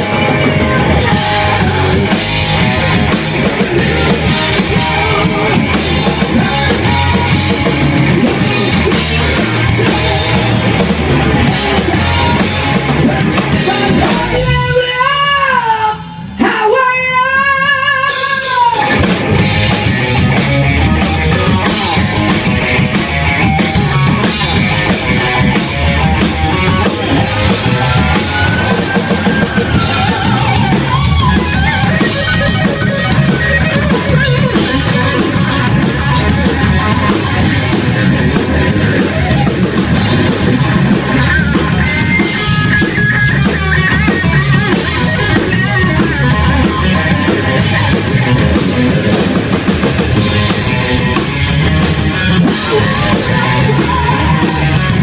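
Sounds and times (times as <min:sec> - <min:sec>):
rock drum kit with cymbals: 0:00.0 - 0:15.0, 0:18.1 - 0:55.0
distorted electric guitar: 0:00.0 - 0:55.0.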